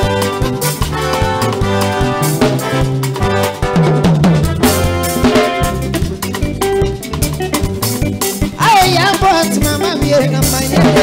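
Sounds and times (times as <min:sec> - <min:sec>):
bass line: 0:00.0 - 0:11.0
drum beat: 0:00.0 - 0:11.0
guitar: 0:00.0 - 0:11.0
live band dance music: 0:00.0 - 0:11.0.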